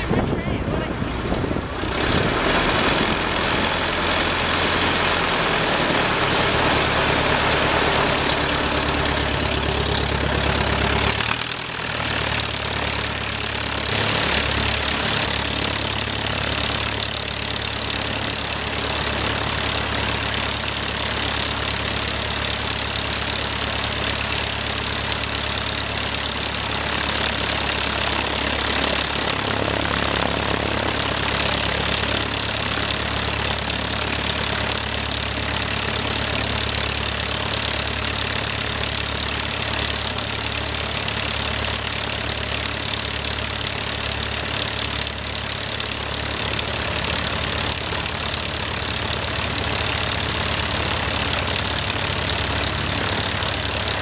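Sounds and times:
propeller aircraft engine running: 0:00.0 - 0:54.0.

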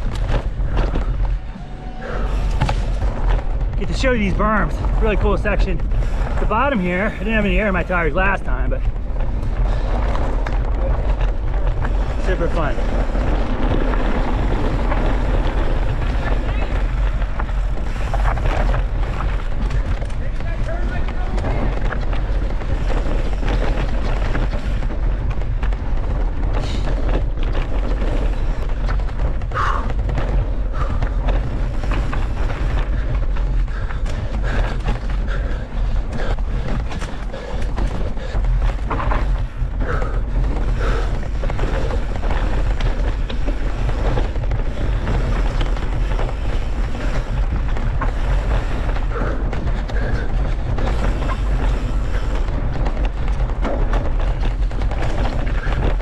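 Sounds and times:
bike knocking and rattling: 0:00.0 - 0:56.0
bike tyre noise: 0:00.0 - 0:56.0
wind rumbling on microphone: 0:00.0 - 0:56.0.

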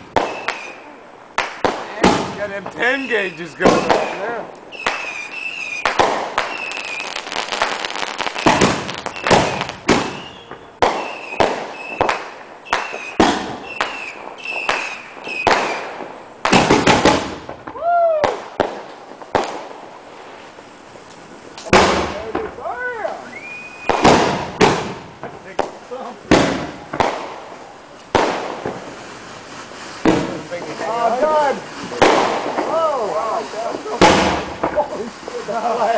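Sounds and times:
fireworks bangs and crackles: 0:00.0 - 0:35.9.

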